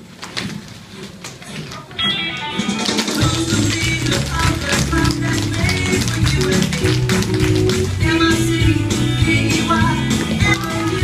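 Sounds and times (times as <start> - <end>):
recorded song with bass: 2.5 - 11.0.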